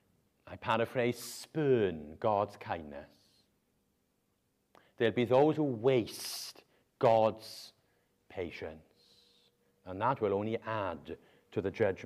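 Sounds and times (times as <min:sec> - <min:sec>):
man speaking: 0:00.4 - 0:03.3, 0:05.0 - 0:12.0.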